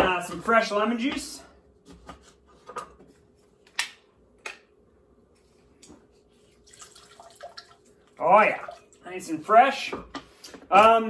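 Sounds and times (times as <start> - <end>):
juice dripping into glass: 6.7 - 9.0.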